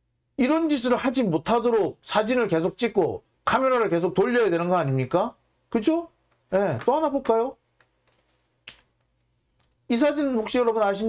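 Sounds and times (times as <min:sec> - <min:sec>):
man speaking: 0:00.4 - 0:07.6, 0:09.9 - 0:11.0.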